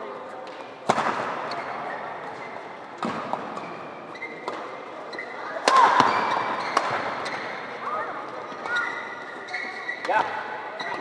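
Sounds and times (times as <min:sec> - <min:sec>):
spectator chatter: 0:00.0 - 0:11.0
rackets hitting shuttlecock: 0:00.4 - 0:01.8, 0:03.0 - 0:04.8, 0:05.6 - 0:07.6.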